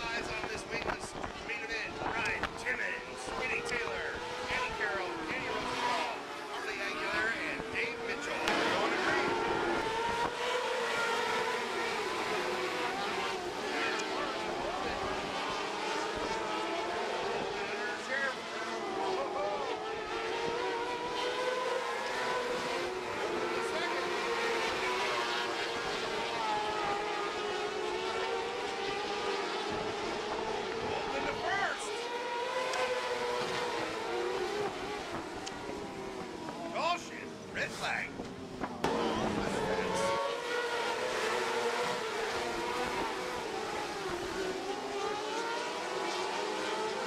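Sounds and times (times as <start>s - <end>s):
race car engines: 0.0s - 47.0s.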